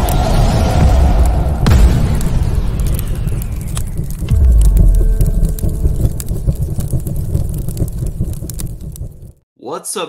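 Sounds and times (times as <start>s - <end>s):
explosion with deep rumble: 0.0s - 9.4s.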